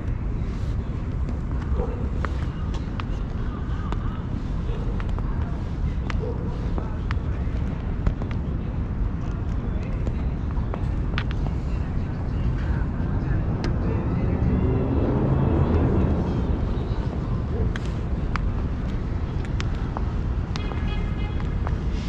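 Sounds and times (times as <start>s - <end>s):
traffic rumble: 0.0s - 22.0s
wind: 0.0s - 22.0s.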